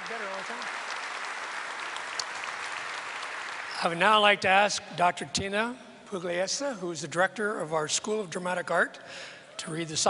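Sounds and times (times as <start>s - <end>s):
audience applause: 0.0s - 4.0s
man speaking: 3.8s - 9.0s.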